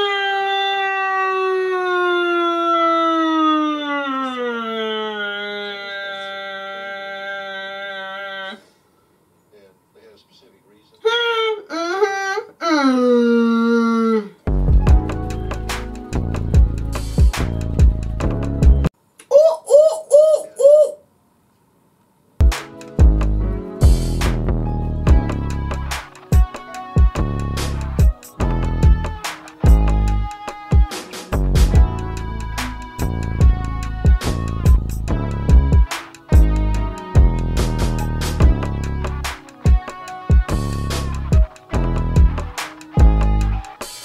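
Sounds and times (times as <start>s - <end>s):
cat yowling: 2.9s - 8.6s
woman hooting: 3.4s - 8.7s, 19.3s - 21.1s.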